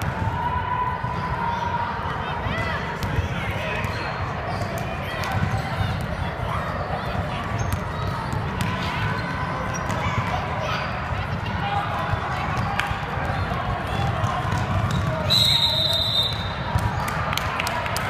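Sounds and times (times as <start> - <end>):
people talking in echoing gym: 0.0 - 18.0
sneakers squeaking: 7.1 - 10.9, 13.3 - 16.7.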